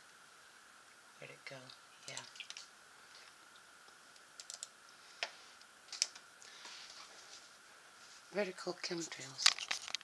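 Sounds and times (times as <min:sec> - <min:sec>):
computer mouse clicks: 0:04.3 - 0:04.7.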